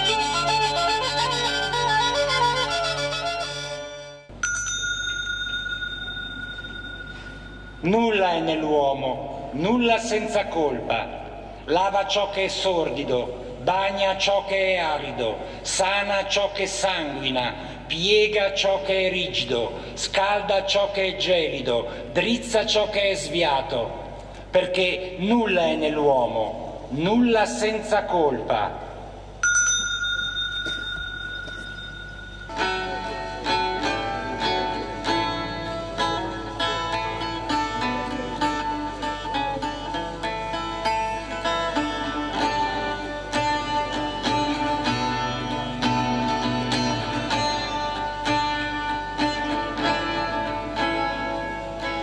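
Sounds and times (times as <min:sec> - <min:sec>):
bell ringing: 0:04.3 - 0:08.5, 0:29.4 - 0:33.7
plucked string instrument: 0:32.4 - 0:52.0.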